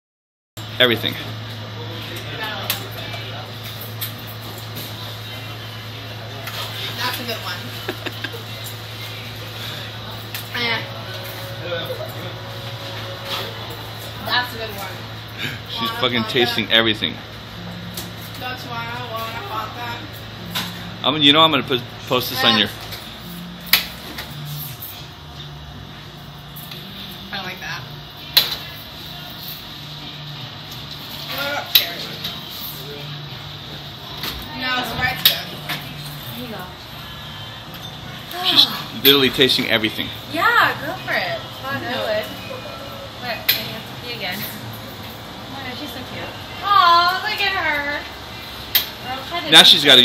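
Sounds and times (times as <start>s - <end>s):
low mechanical hum: 0.6s - 50.0s.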